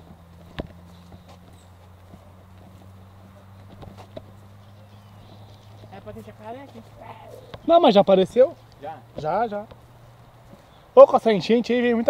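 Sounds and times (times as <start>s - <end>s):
footsteps on dirt trail: 0.0s - 10.9s.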